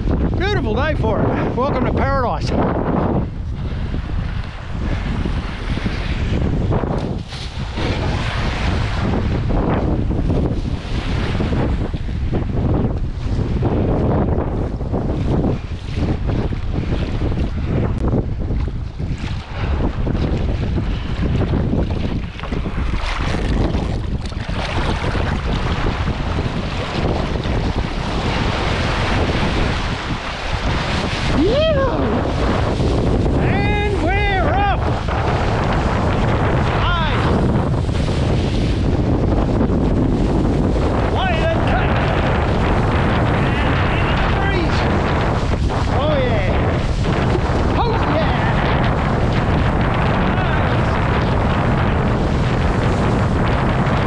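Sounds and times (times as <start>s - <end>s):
wind buffeting microphone: 0.0s - 54.0s
water rushing and splashing: 3.2s - 54.0s.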